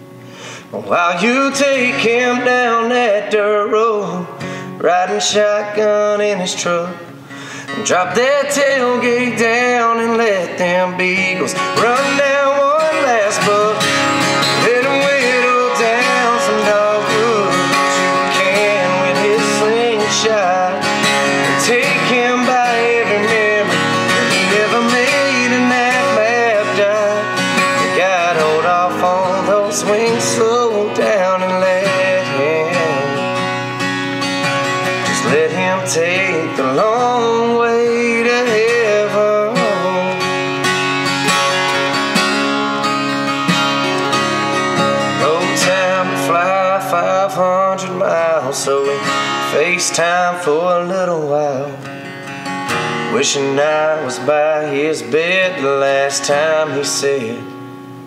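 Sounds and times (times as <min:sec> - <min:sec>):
acoustic guitar playing country music: 0:00.0 - 0:58.0.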